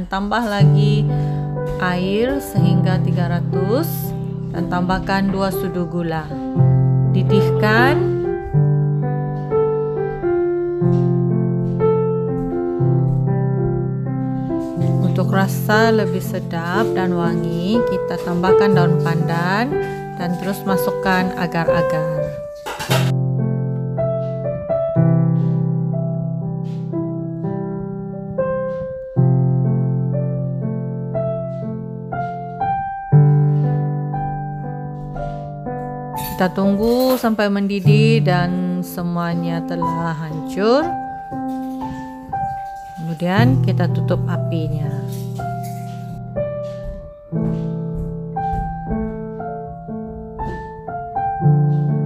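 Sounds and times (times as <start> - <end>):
gentle piano music: 0.0 - 52.0.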